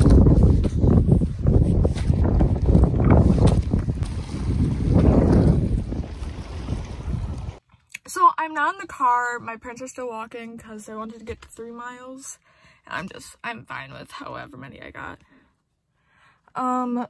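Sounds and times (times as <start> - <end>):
wind buffeting microphone: 0.0 - 7.6.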